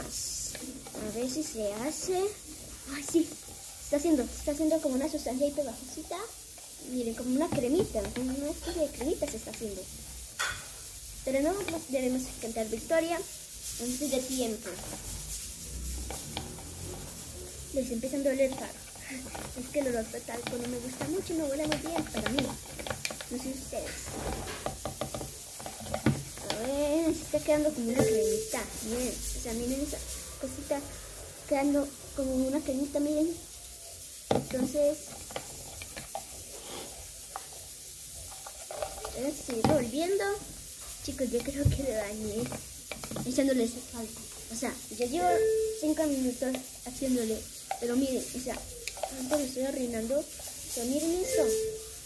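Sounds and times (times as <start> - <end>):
stick stirring slime in cup: 0.1 - 10.1, 11.2 - 30.8, 34.3 - 37.6, 38.2 - 51.9
stick scraping plastic cup: 14.3 - 17.2, 17.8 - 28.5.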